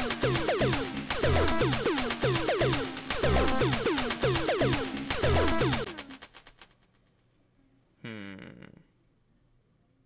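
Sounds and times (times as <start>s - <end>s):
electronic synth music: 0.0s - 6.4s.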